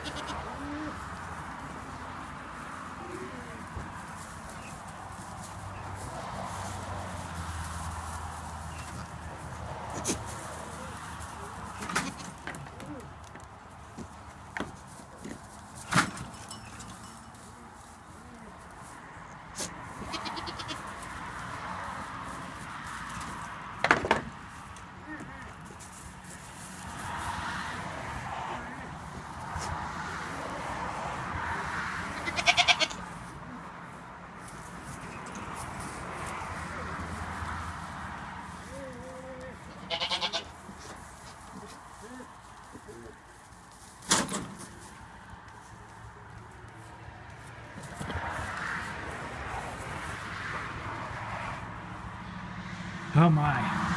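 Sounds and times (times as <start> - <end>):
goats bleating: 0.0 - 0.9, 20.0 - 20.9, 32.1 - 33.0, 38.9 - 40.8.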